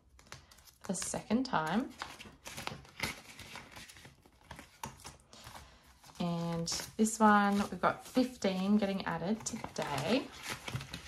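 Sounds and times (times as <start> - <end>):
plastic pockets and banknotes crinkling: 0.0 - 11.0.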